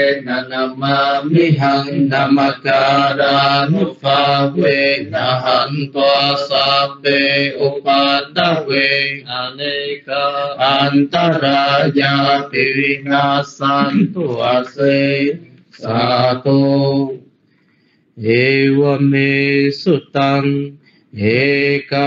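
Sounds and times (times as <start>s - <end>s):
man chanting: 0.0s - 17.3s, 18.2s - 22.0s.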